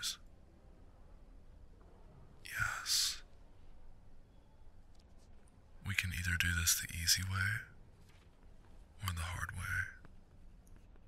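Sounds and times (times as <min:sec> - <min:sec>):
man speaking softly: 0:00.0 - 0:00.2, 0:02.4 - 0:03.3, 0:05.8 - 0:07.8, 0:09.0 - 0:10.1.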